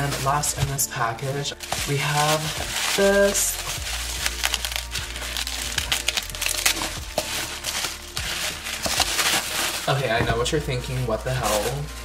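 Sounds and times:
bubble wrap crinkling: 0.0 - 12.0.

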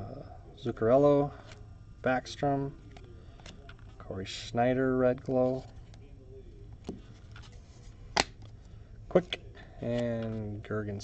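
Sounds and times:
low steady hum: 0.0 - 11.0
cards rustling in hand: 6.8 - 8.7
card snap: 8.2 - 8.4.

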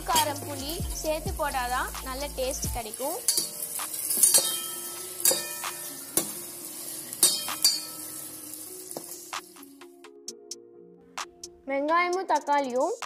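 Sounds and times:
onions and tomatoes sizzling: 0.0 - 9.9
spatula scraping and knocking pan: 3.3 - 9.3.

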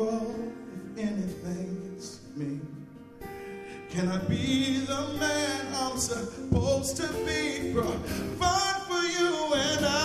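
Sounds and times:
man singing with heavy vibrato: 0.0 - 3.0, 3.7 - 10.0
strummed acoustic guitar: 0.0 - 10.0.

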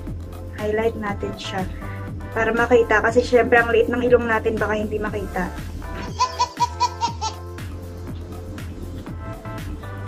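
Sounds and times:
background music: 0.0 - 10.0
baby laughing: 6.0 - 7.4.

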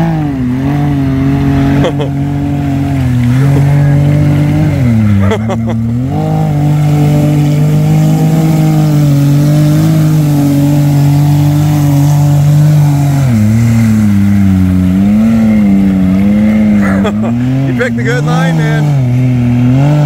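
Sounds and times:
engine at high revs: 0.0 - 20.0
water splashing: 0.0 - 20.0.

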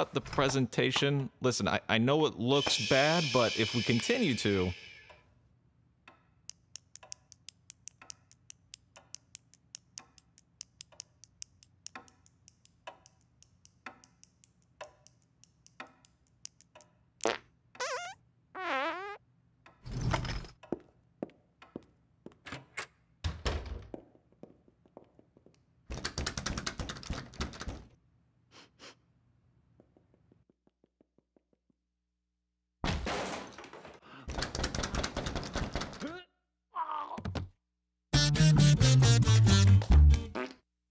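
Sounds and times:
cartoon ticking: 6.5 - 16.9
sliding squeaky sounds: 17.8 - 18.2.

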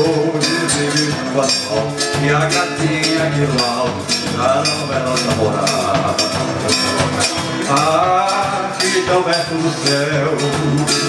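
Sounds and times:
acoustic guitar: 0.0 - 11.0
electric bass: 0.0 - 11.0
light steady beat: 0.0 - 11.0.

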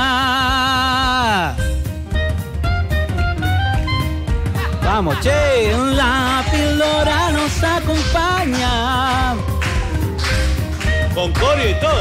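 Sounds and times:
man calling out: 4.6 - 7.3
person singing: 4.6 - 9.9.

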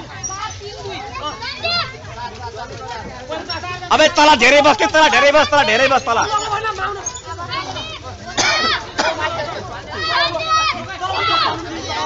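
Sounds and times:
boys and men shouting: 4.1 - 12.0.

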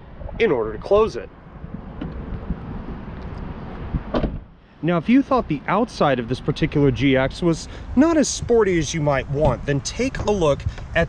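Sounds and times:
wind on microphone: 0.0 - 4.5, 6.8 - 11.0
car door closing shut: 4.0 - 4.5.

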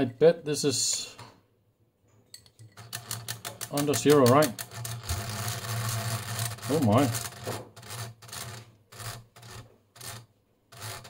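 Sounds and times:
mechanical counter ticking rapidly: 2.8 - 11.0.

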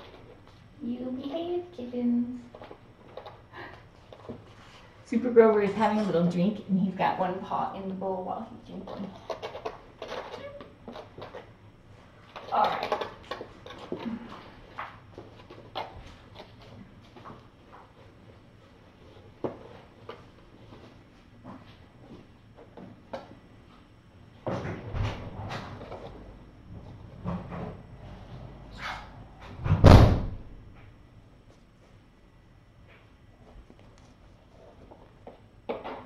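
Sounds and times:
heavy thump: 29.6 - 30.5.

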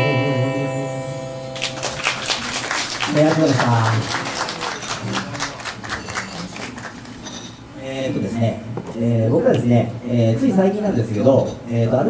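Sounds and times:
audience clapping: 1.5 - 7.3.

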